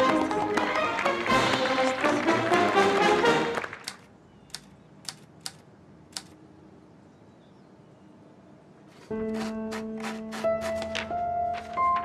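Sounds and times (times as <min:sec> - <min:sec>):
brass band music: 0:00.0 - 0:03.8.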